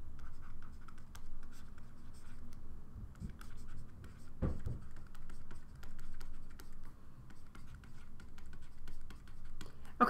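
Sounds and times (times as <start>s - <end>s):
stylus scratching on tablet: 0.0s - 2.6s, 3.2s - 9.6s.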